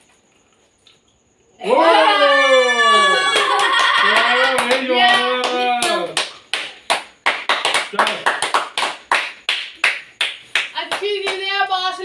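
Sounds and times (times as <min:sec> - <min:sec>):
person crying out: 0:01.7 - 0:04.4
hands clapping: 0:03.3 - 0:11.5.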